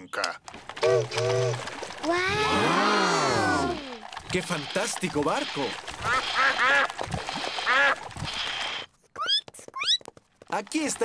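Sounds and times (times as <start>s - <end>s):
toy steam boat hissing: 3.0s - 8.9s
cartoon ducks quacking: 5.6s - 8.1s.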